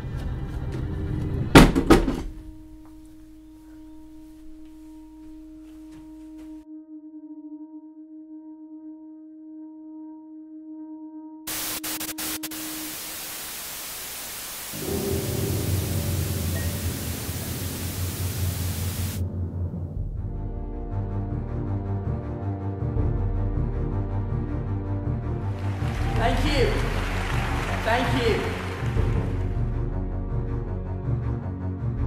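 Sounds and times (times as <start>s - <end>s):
soft hiss: 11.5s - 19.2s
steady electronic tone: 11.5s - 19.2s
low pulsing drone: 14.8s - 25.3s.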